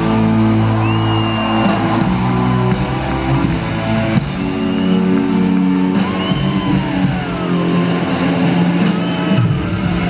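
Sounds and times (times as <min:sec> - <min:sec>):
live rock band with electric guitars: 0:00.0 - 0:10.0.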